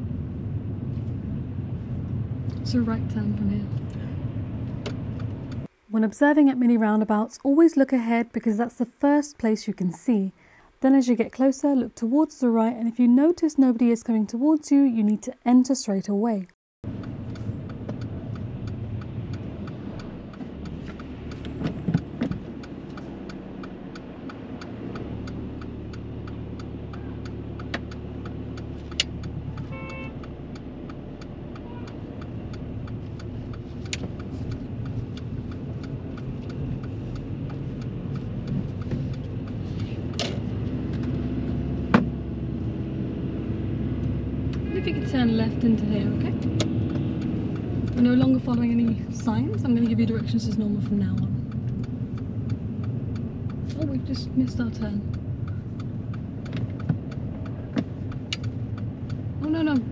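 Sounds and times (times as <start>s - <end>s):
turn signal ticking: 0.0s - 5.7s, 10.9s - 59.9s
car engine and road noise: 0.0s - 8.6s, 16.8s - 59.9s.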